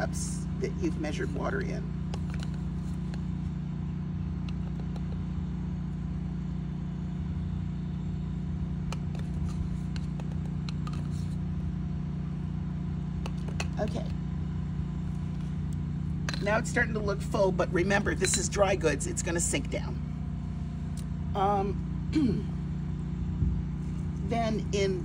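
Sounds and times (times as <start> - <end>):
motor hum with rumble: 0.0 - 25.0.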